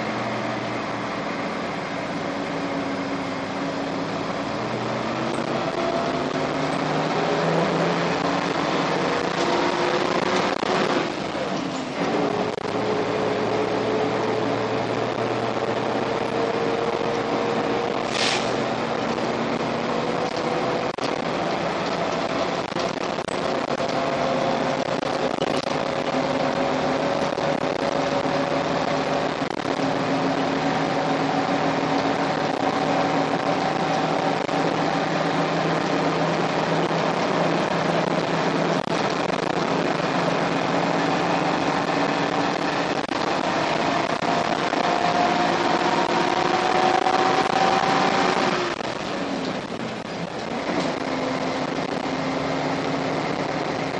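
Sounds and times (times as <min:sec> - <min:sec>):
bus diesel engine pulling hard: 0:00.0 - 0:53.9
air hiss: 0:18.1 - 0:18.6.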